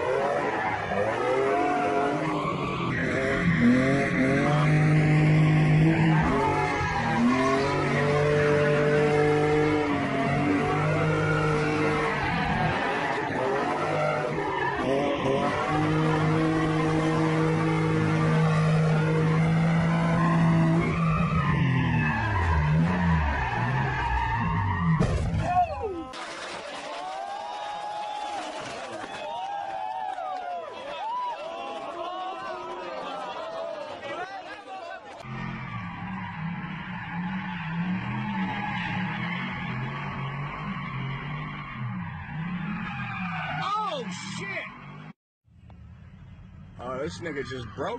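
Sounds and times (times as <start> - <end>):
car engine at high revs: 0.0 - 24.5.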